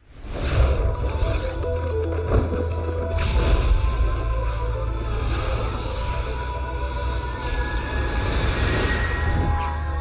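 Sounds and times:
low drone: 0:00.2 - 0:10.0.

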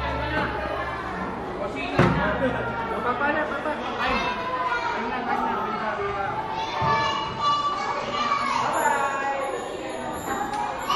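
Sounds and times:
adults and child chattering: 0:00.0 - 0:10.9.

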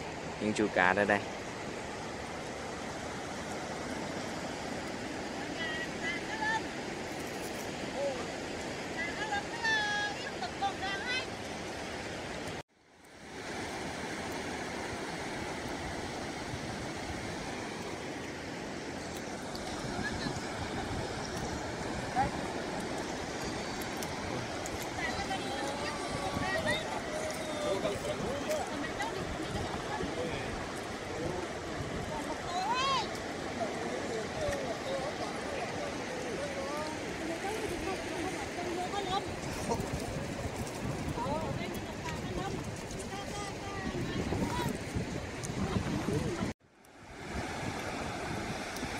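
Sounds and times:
surf washing on shore: 0:00.0 - 0:48.9.

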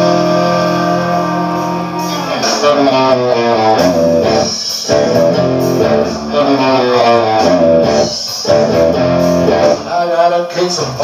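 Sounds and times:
electric guitar picked runs: 0:00.0 - 0:09.9
recorded song: 0:00.0 - 0:11.0.

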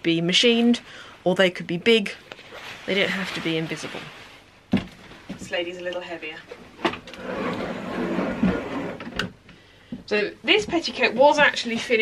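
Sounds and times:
stiff fabric rustling: 0:02.0 - 0:05.7.

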